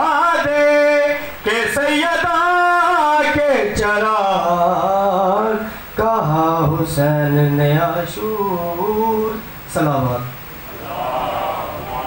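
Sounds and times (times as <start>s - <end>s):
man chanting through a microphone: 0.0s - 12.0s.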